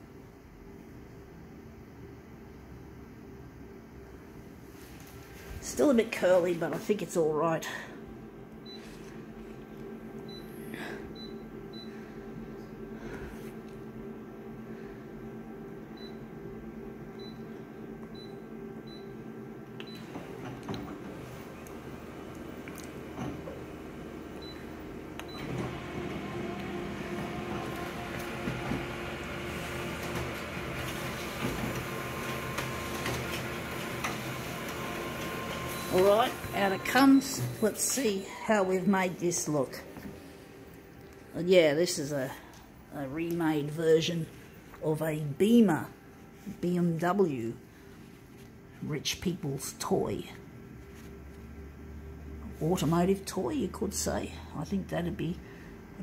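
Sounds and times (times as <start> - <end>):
copier fans humming: 0.0 - 56.0.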